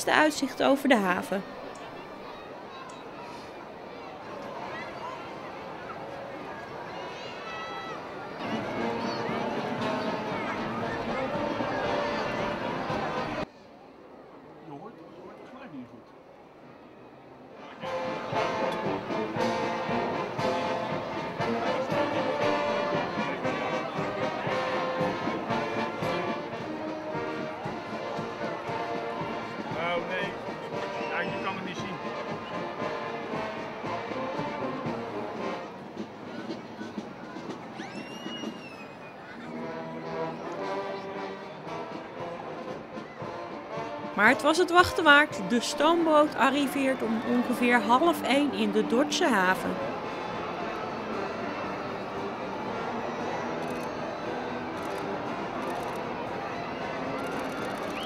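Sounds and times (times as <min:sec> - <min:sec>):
voices: 0:00.0 - 0:13.5, 0:44.2 - 0:58.0
brass band music: 0:08.2 - 0:13.4, 0:17.8 - 0:36.6, 0:39.5 - 0:58.0.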